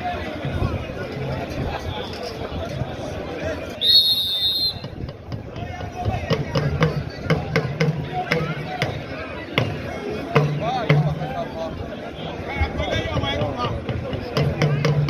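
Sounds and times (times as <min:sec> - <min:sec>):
crowd voices: 0:00.0 - 0:15.0
shrill whistle blast: 0:03.8 - 0:05.0
drumming with even strikes: 0:04.2 - 0:11.6, 0:13.0 - 0:15.0.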